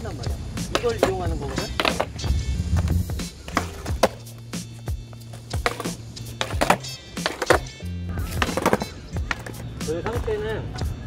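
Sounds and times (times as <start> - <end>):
background music with bass: 0.0 - 11.0
skateboard tail clacking on concrete: 0.6 - 10.4.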